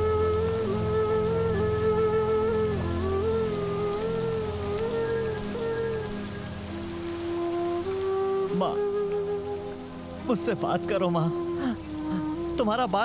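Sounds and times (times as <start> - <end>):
slow music of long held notes: 0.0 - 13.0
steady rain falling: 0.0 - 13.0.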